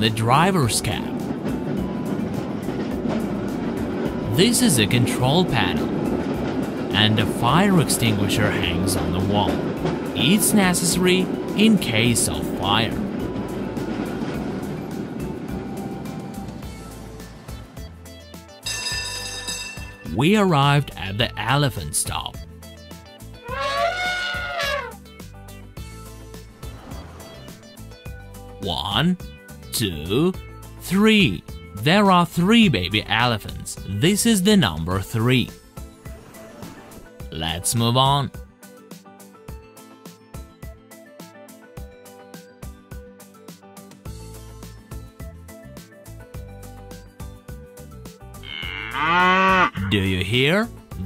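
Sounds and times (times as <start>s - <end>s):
cheerful background music: 0.0s - 51.0s
cow mooing loudly: 23.4s - 25.0s, 48.4s - 49.9s
elephant trumpeting: 23.4s - 25.0s, 48.4s - 50.1s.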